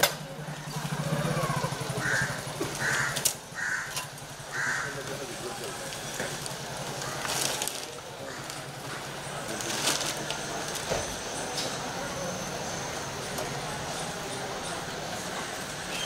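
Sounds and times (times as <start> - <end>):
bird harsh calls: 0.5 - 5.0.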